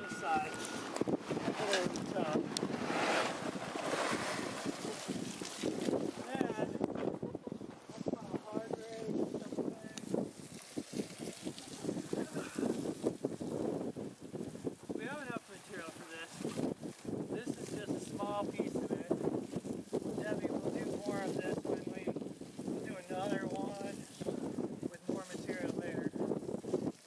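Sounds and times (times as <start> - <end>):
people talking indistinctly: 0.0 - 3.2, 3.9 - 6.8, 7.4 - 10.2, 15.0 - 16.4, 17.3 - 19.2, 20.2 - 22.2, 22.8 - 26.2
garden hose spraying water: 0.0 - 6.6, 8.5 - 27.0.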